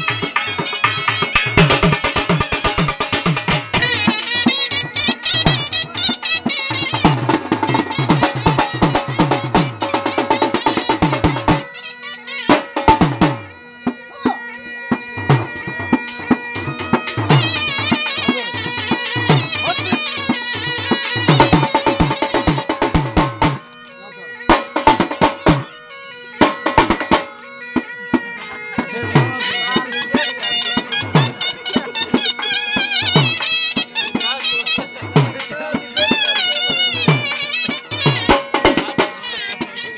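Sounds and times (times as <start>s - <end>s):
dhol drum beating fast: 0.0s - 23.7s, 24.4s - 39.9s
wind instrument melody: 0.0s - 39.9s.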